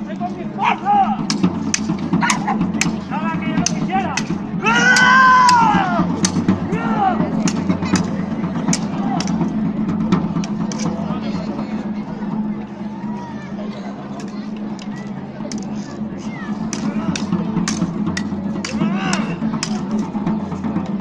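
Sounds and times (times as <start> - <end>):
voices shouting: 2.1 - 9.5, 18.5 - 20.3.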